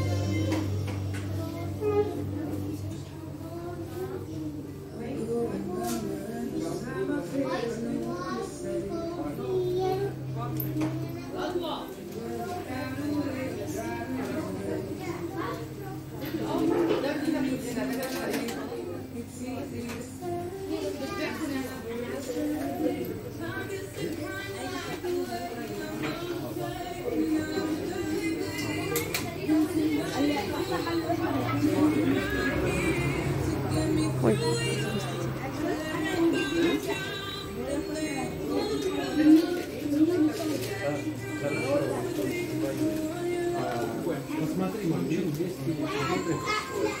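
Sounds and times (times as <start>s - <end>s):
people talking at once: 0.0s - 47.0s
child's voice: 0.3s - 4.7s, 7.4s - 11.6s, 14.9s - 17.0s, 45.8s - 47.0s.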